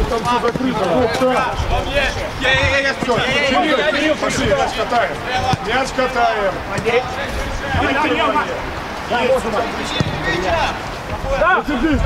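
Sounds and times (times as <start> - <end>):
men shouting and calling: 0.0 - 12.0.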